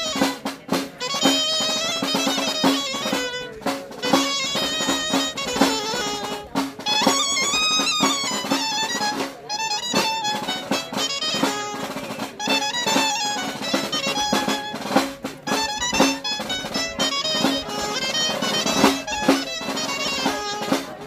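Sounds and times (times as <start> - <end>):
folk dance tune on pipe: 0.0 - 21.0
snare drum beating: 0.0 - 21.0.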